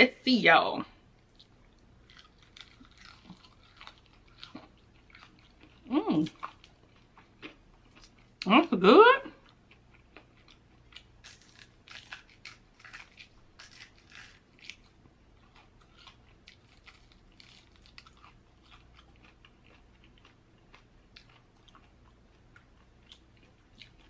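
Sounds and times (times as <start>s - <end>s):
crunchy chewing: 1.2s - 8.5s, 9.4s - 24.0s.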